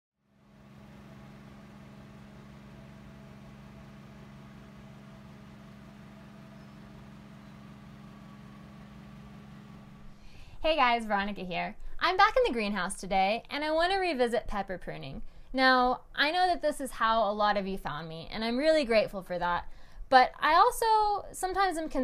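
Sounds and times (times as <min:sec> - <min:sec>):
steady low two-tone hum: 0:00.3 - 0:10.8.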